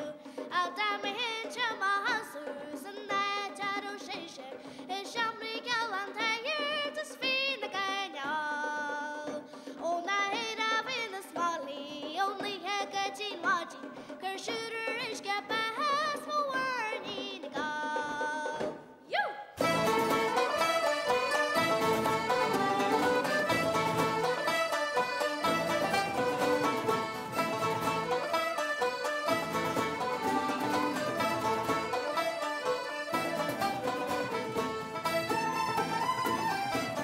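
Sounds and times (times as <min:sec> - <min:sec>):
fiddles flutes and guitars playing: 0:19.6 - 0:37.0.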